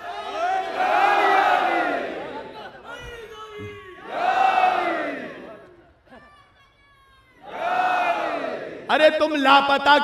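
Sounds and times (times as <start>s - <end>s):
crowd of men shouting: 0.0s - 2.5s, 3.2s - 5.6s.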